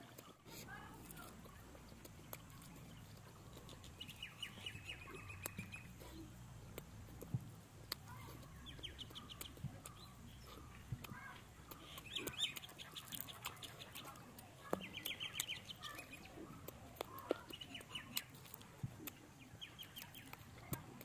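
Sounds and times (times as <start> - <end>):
chewing and lip-smacking: 0.0 - 21.0
birds chirping: 0.8 - 6.9, 8.0 - 20.8.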